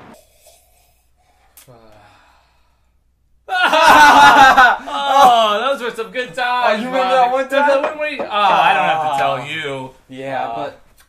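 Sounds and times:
men laughing loudly: 3.5 - 5.6, 8.3 - 9.2.

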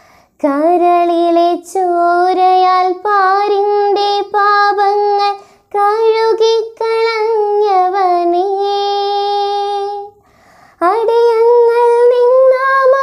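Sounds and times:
girl singing unaccompanied: 0.0 - 13.0.

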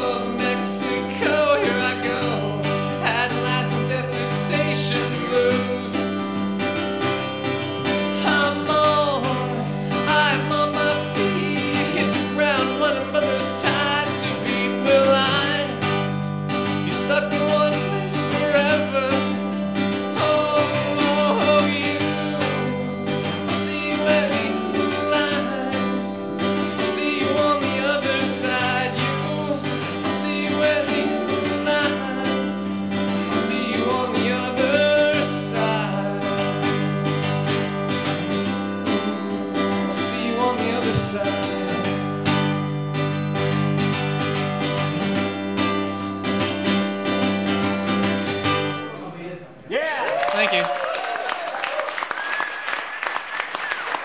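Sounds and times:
man singing: 0.0 - 43.5
acoustic guitar strumming: 0.0 - 49.2.

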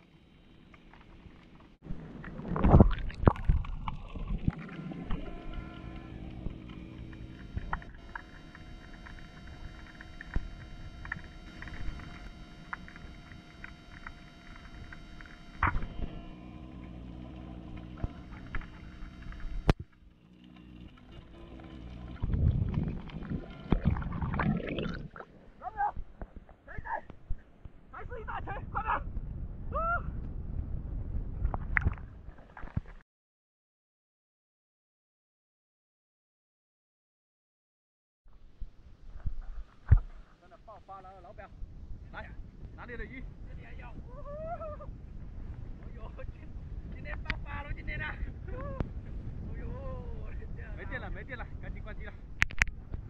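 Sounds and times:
steady underwater hum: 0.0 - 32.9, 38.3 - 53.0.

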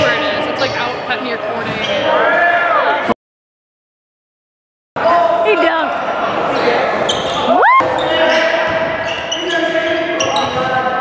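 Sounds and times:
spectators and players voices: 0.0 - 3.2, 5.0 - 11.0.

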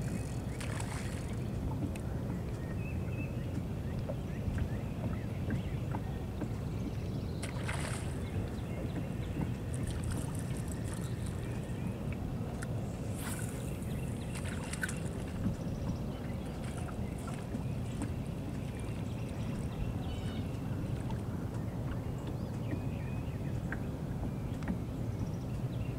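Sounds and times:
steady low rumble: 6.0 - 22.2
fishing rod swishing: 13.0 - 15.2.

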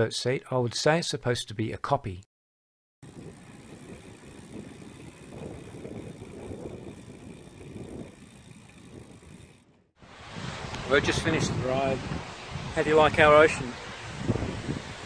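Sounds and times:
bicycle tyres rumbling on road: 3.0 - 15.0
wind on microphone: 3.0 - 15.0.

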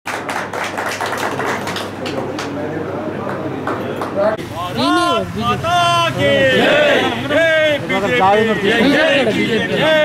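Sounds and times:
people clapping: 0.0 - 4.4.

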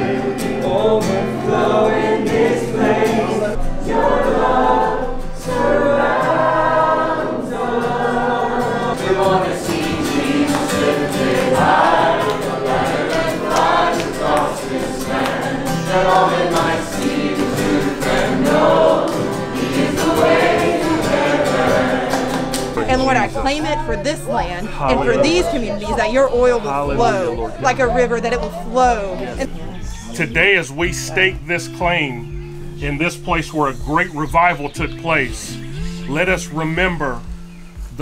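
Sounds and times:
group singing gospel song: 0.0 - 37.3
acoustic guitar: 0.0 - 38.0.

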